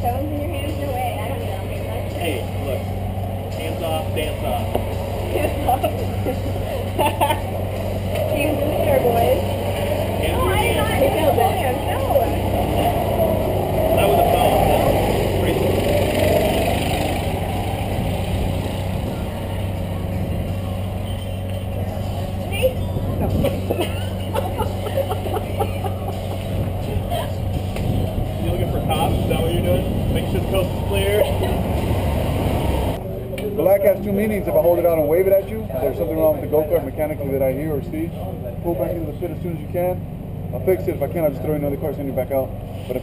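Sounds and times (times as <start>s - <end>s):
indistinct voices: 0.0s - 41.8s
go-kart engines droning: 0.0s - 43.0s
laughter: 5.4s - 7.5s, 23.3s - 26.6s, 31.1s - 31.6s.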